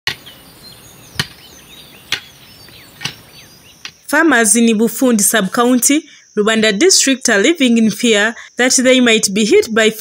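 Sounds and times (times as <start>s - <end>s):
hand hoe chopping into dry soil: 0.1s - 0.3s, 1.1s - 4.0s.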